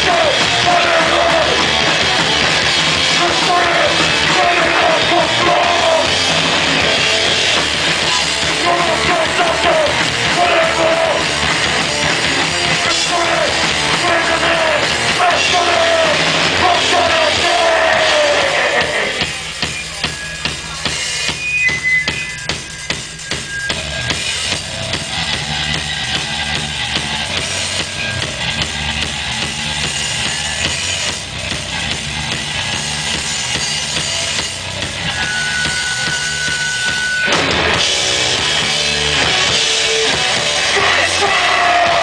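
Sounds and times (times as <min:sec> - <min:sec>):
hardcore band playing loud: 0:00.0 - 0:42.0.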